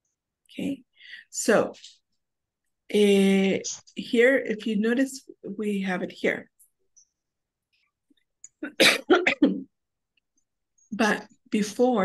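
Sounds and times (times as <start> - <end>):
woman clearing her throat: 8.7 - 9.6.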